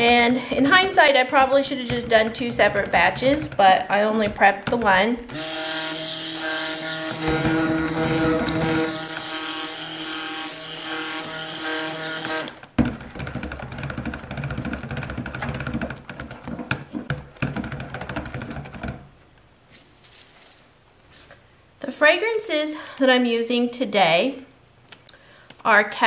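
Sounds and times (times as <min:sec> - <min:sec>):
stick blender motor whine: 0:05.3 - 0:12.7.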